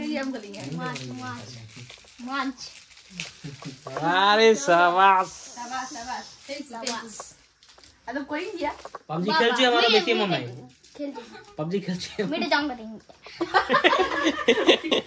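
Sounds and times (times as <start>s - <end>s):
people talking: 0.0s - 2.7s, 3.4s - 7.4s, 8.1s - 10.6s
child's high-pitched voice: 2.2s - 2.7s.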